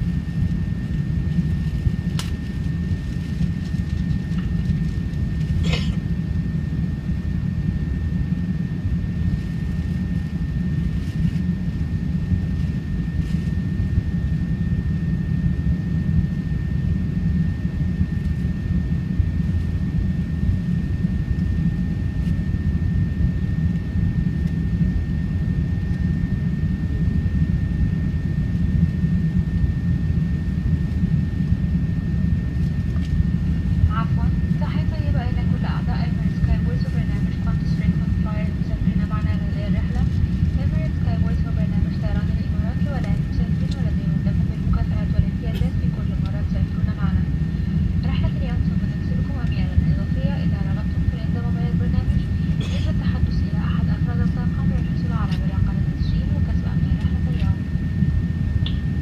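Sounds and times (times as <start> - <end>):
jet engine roar in cabin: 0.0 - 59.0.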